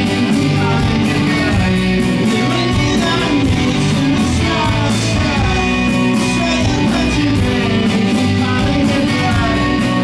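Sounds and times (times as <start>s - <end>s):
electric guitars: 0.0s - 10.0s
person singing: 0.0s - 10.0s
rock band playing loudly: 0.0s - 10.0s.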